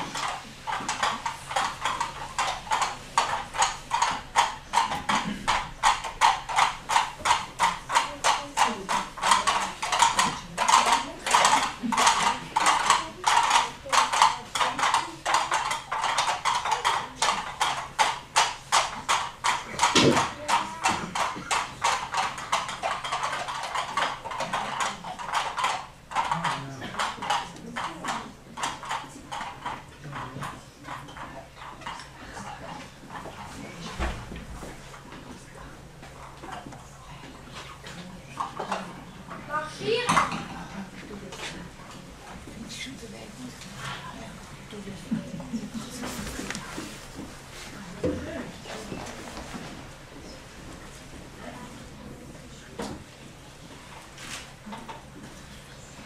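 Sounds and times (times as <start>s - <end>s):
imitated hoof clip-clop: 0.0s - 56.0s.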